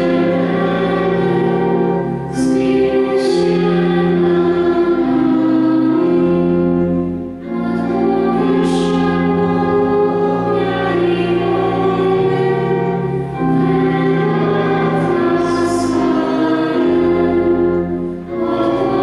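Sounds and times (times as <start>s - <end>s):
pipe organ playing hymn chords: 0.0s - 19.0s.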